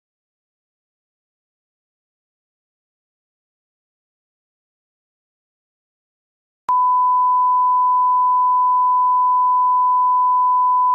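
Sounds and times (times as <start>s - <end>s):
steady pure test tone beep: 6.7s - 10.9s.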